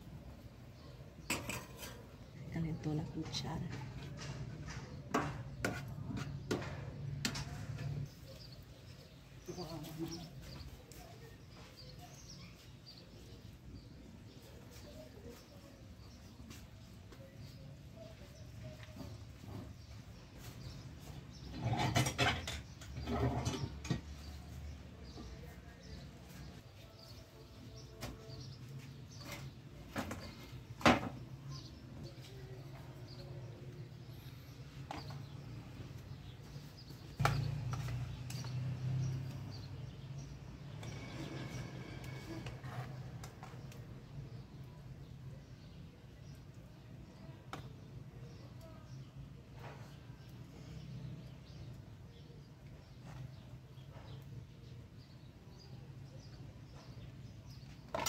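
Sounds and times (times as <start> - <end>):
metal spoons and pans clinking: 1.2 - 2.2, 21.5 - 24.1.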